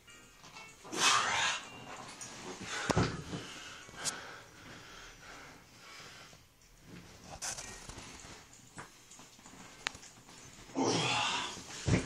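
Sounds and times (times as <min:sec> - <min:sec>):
man grunting with effort: 0:10.8 - 0:11.6.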